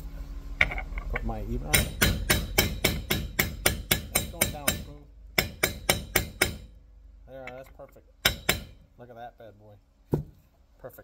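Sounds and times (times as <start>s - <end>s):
hammer tapping metal bearing: 1.6s - 6.8s, 7.4s - 8.8s.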